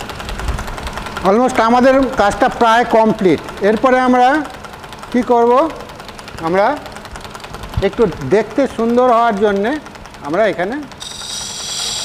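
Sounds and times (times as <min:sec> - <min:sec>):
wood lathe motor running: 0:00.0 - 0:12.0.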